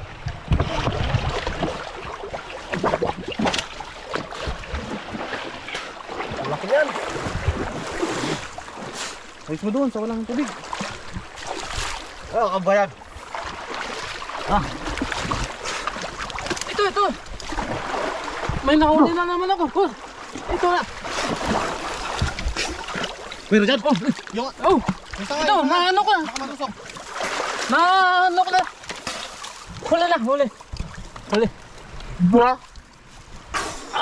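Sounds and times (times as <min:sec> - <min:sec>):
stream water swirling around legs: 0:00.0 - 0:34.0.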